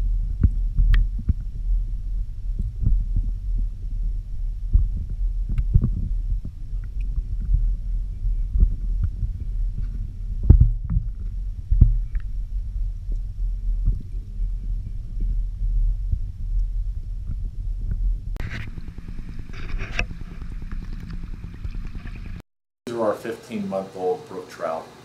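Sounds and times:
underwater rumble of moving water: 0:00.0 - 0:22.4.

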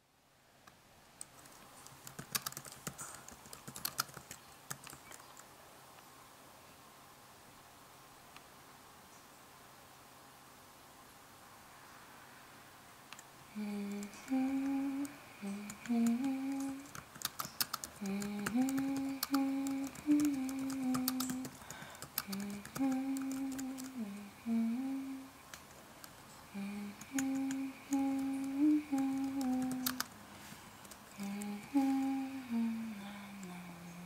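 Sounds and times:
person humming: 0:13.5 - 0:17.0, 0:18.0 - 0:25.4, 0:26.5 - 0:30.1, 0:31.2 - 0:34.0.

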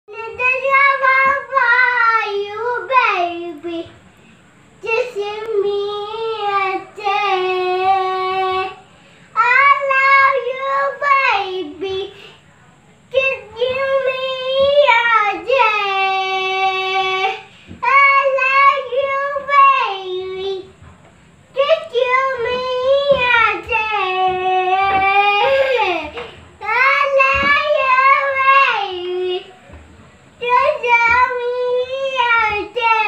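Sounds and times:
girl singing unaccompanied: 0:00.1 - 0:33.0.

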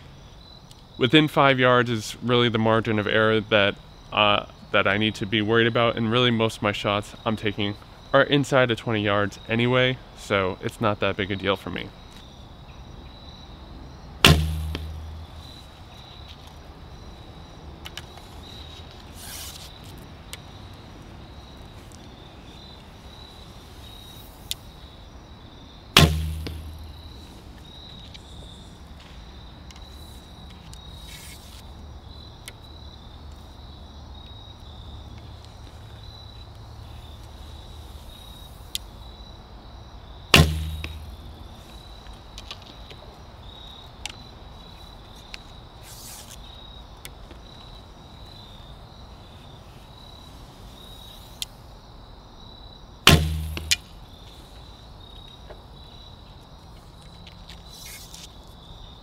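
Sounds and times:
crickets chirring: 0:00.0 - 0:59.0
bow string release thump: 0:14.3 - 0:15.7, 0:26.0 - 0:27.1, 0:40.4 - 0:41.4, 0:53.1 - 0:53.9.

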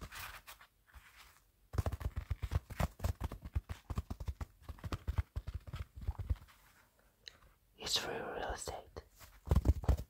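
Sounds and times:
fingertips tapping on microphone: 0:01.7 - 0:06.7, 0:09.2 - 0:10.0.

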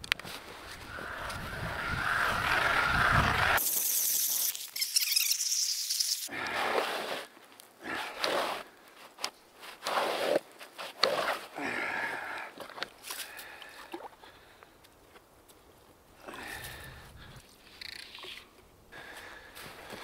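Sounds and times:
ice auger blades scraping ice: 0:00.7 - 0:08.8, 0:09.6 - 0:11.5
thin high hiss: 0:03.6 - 0:06.3.

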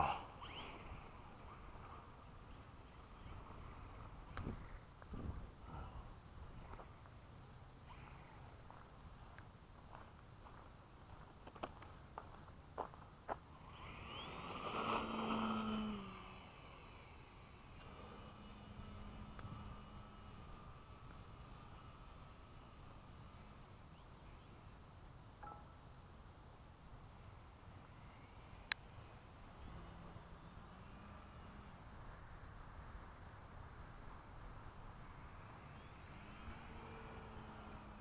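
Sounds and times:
model airplane motor whining: 0:00.0 - 0:04.5, 0:13.6 - 0:24.7, 0:35.4 - 0:38.0.

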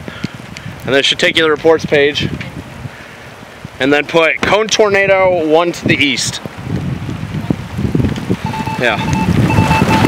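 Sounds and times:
rain pattering: 0:00.0 - 0:10.0
wind buffeting microphone: 0:00.0 - 0:10.0
electronic beep: 0:08.4 - 0:10.0.

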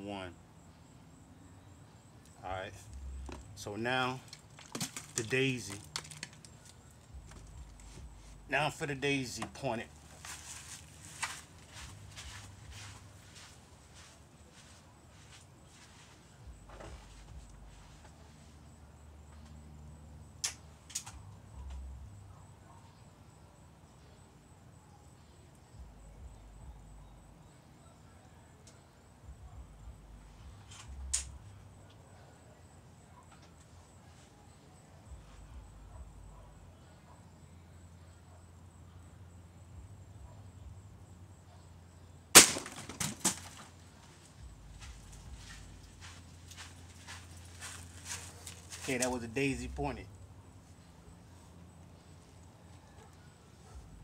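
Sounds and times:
pellet knocking bottles over: 0:04.4 - 0:06.4, 0:42.4 - 0:43.7
air rifle shot: 0:42.4 - 0:42.9.

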